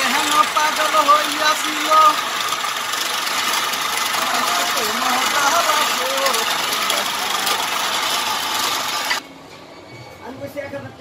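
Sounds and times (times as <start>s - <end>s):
person speaking: 0.0s - 2.3s, 4.1s - 7.7s
chisel cutting spinning wood: 0.0s - 9.2s
wood lathe running: 0.0s - 9.2s.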